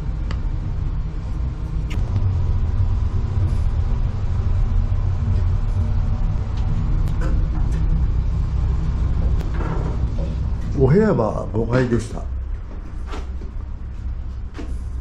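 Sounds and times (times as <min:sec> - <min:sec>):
elevator car rumbling: 0:00.0 - 0:15.0.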